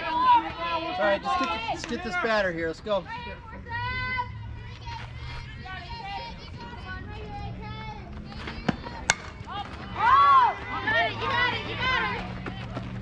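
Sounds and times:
spectators yelling: 0:00.0 - 0:13.0
voices chattering: 0:00.0 - 0:13.0
bat cracking against ball: 0:08.4 - 0:09.8.

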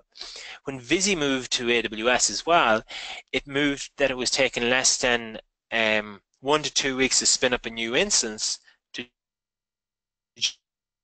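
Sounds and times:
sharp breath: 0:00.1 - 0:00.6, 0:02.9 - 0:03.2.

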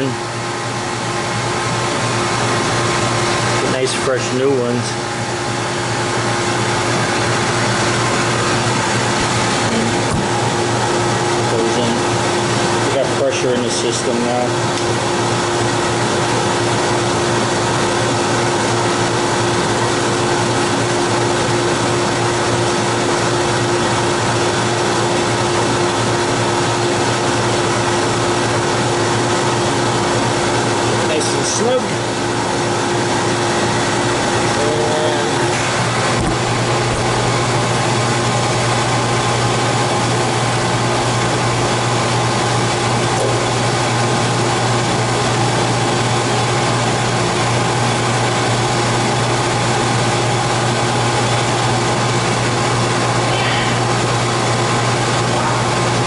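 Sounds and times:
condensing unit mechanical hum: 0:00.0 - 0:56.0.

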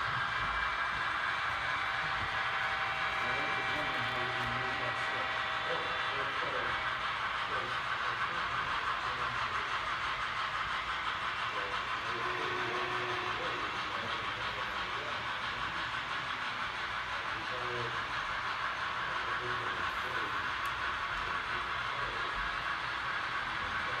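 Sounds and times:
model train rolling on track: 0:00.0 - 0:24.0
faint voices: 0:01.7 - 0:24.0.

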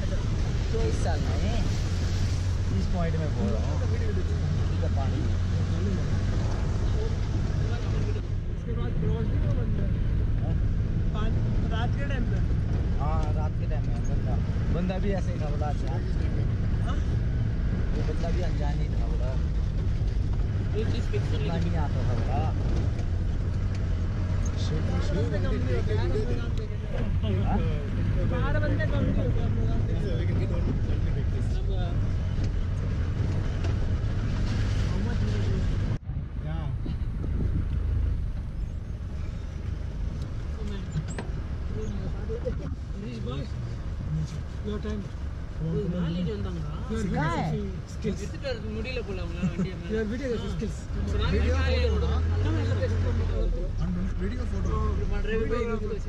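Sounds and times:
diesel engine rumble: 0:00.0 - 0:56.0.

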